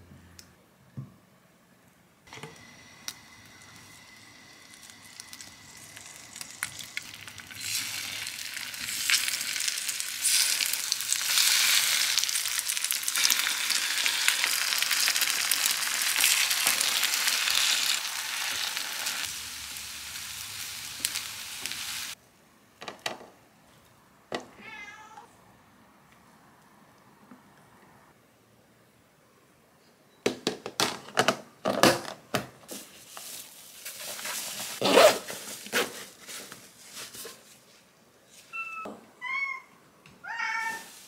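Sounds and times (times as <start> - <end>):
food sizzling in oil: 2.4 - 22.2
cat meowing: 24.5 - 25.3, 38.6 - 41.0.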